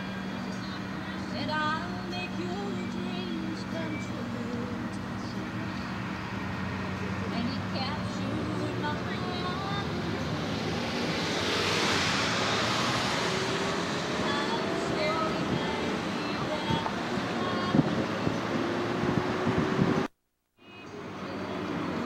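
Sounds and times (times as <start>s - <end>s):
car road and engine noise: 0.0s - 22.0s
traffic passing: 0.0s - 22.0s.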